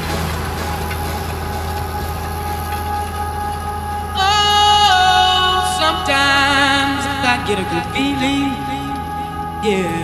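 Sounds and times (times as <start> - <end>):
faint music: 0.0 - 10.0
tractor diesel engine running: 0.0 - 10.0.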